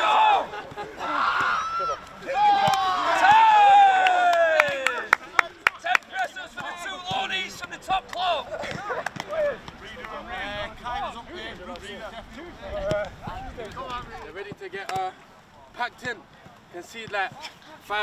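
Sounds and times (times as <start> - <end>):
people shouting and laughing: 0.0 - 13.8.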